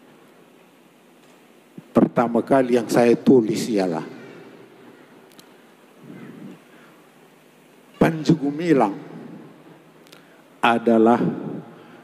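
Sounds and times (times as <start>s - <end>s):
speech echo in a large hall: 1.1s - 12.0s
faint murmur: 3.7s - 10.6s.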